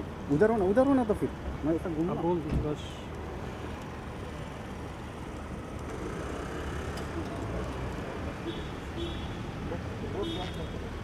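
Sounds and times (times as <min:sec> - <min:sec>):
street noise: 0:00.0 - 0:11.0.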